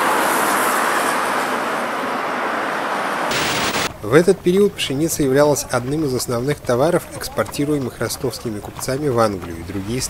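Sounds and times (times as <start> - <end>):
road traffic rushing past: 0.0 - 4.1.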